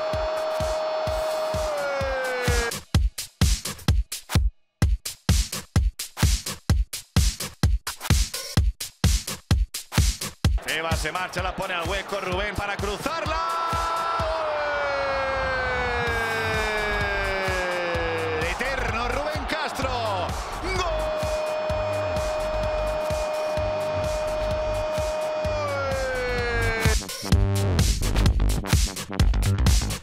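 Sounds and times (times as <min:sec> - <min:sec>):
background music: 0:00.0 - 0:30.0
commentator shouting gol: 0:01.5 - 0:02.7, 0:10.6 - 0:27.0.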